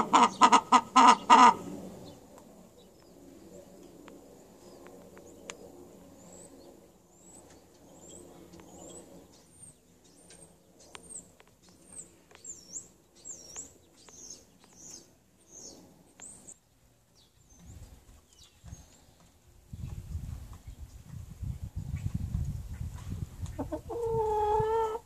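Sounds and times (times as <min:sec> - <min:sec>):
hens murmuring: 0:00.0 - 0:02.0, 0:23.4 - 0:25.0
small bird chirping: 0:04.6 - 0:25.0.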